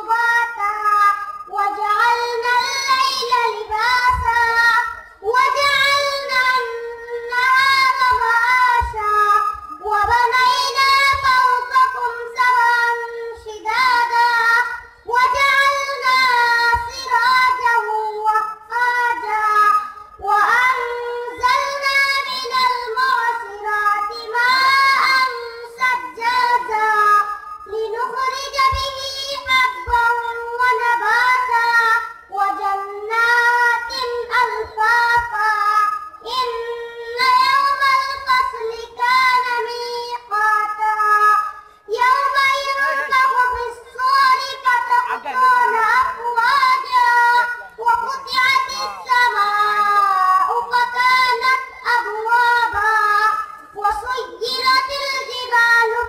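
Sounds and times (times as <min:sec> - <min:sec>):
boy chanting melodic recitation: 0:00.0 - 0:56.0.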